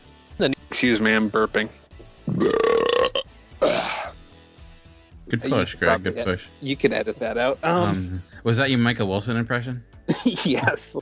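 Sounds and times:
man burping: 0:02.3 - 0:04.2.

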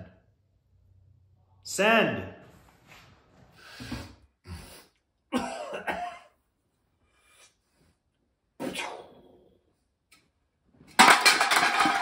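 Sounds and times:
man clearing his throat: 0:05.3 - 0:06.3
man coughing: 0:05.3 - 0:06.3.

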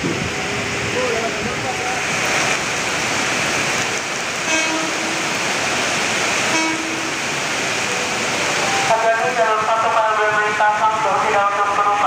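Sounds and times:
heavy rain hiss: 0:00.0 - 0:12.0
train horn short toots: 0:04.4 - 0:05.4, 0:06.4 - 0:07.2.

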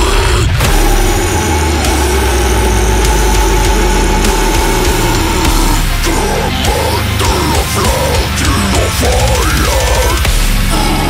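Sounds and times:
guttural scream: 0:00.0 - 0:11.0
heavy distorted band: 0:00.0 - 0:11.0.

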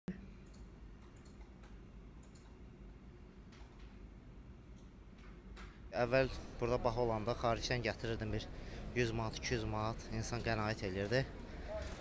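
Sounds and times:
low steady hum: 0:00.1 - 0:12.0.

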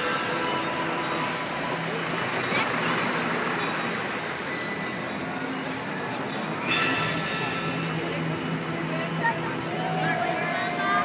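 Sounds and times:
city traffic: 0:00.0 - 0:11.0
crowd of onlookers: 0:00.0 - 0:11.0.

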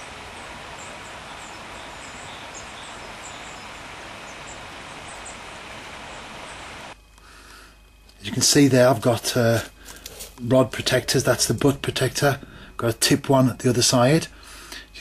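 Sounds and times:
faint high bird chirps: 0:00.0 - 0:06.7
outdoor background noise: 0:00.0 - 0:15.0.

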